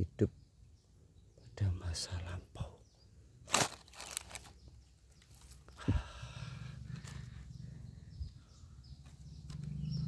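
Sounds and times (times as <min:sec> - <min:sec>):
birds chirping: 0:00.0 - 0:10.0
low rumble: 0:05.8 - 0:10.0.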